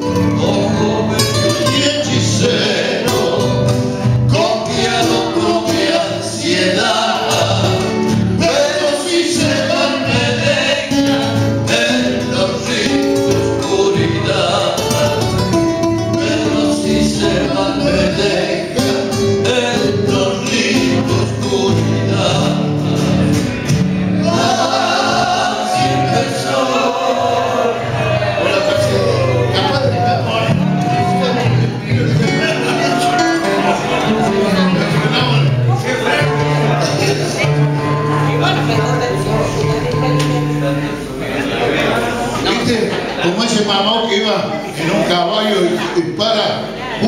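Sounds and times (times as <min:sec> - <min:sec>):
men singing in harmony: 0:00.0 - 0:42.6
strummed acoustic guitars: 0:00.0 - 0:47.0.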